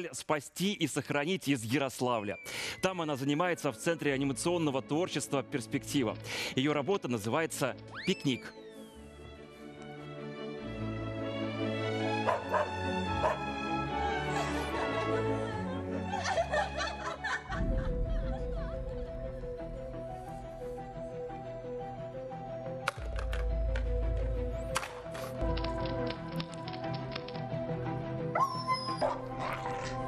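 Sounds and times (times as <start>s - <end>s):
light background music: 0.6s - 30.0s
dog yelping and barking: 12.3s - 13.4s, 28.4s - 29.9s
giggling laughter: 14.2s - 19.0s.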